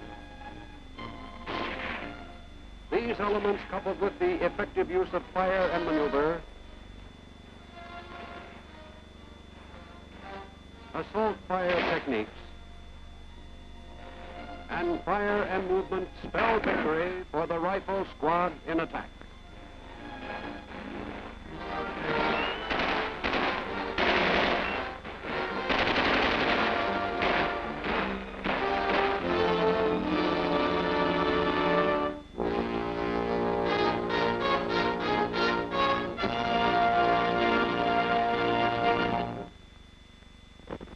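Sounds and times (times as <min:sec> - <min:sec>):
film score with held chords: 0:00.0 - 0:39.6
machine-gun and rifle fire: 0:11.7 - 0:12.2, 0:22.1 - 0:29.9.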